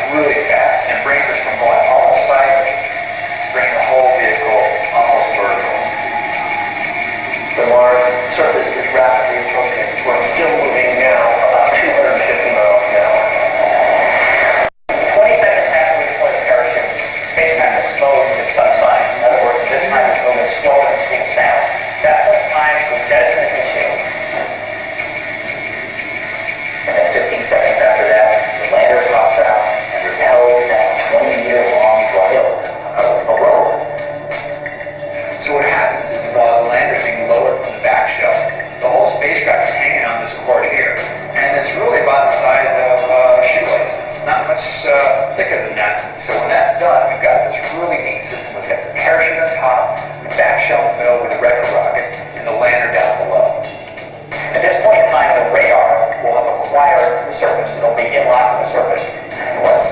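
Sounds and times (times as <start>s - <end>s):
person talking: 0.0s - 6.0s, 7.6s - 13.4s, 14.9s - 24.6s, 26.9s - 34.0s, 35.4s - 53.6s, 54.3s - 59.9s
music over loudspeakers: 0.0s - 59.9s.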